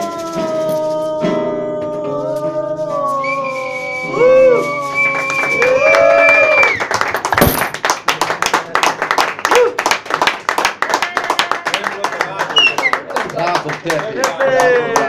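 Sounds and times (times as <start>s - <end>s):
person singing: 0.0s - 6.6s
audience clapping: 4.2s - 15.0s.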